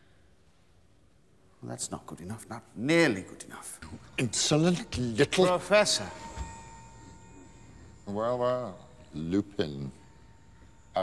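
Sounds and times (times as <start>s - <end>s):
thin steady high tone: 1.3s - 11.0s
low hum: 3.8s - 11.0s.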